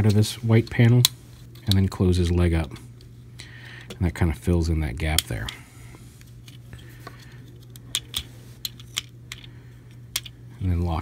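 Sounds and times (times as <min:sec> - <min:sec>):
plastic toy parts clicking: 0:07.6 - 0:09.5, 0:10.1 - 0:10.3.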